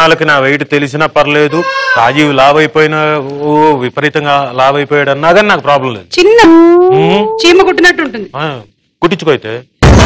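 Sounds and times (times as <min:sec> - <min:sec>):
high wavering voiced sound: 0:06.6 - 0:07.8.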